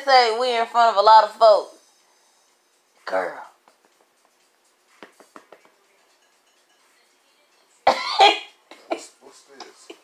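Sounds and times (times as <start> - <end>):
person coughing loudly: 7.9 - 9.0.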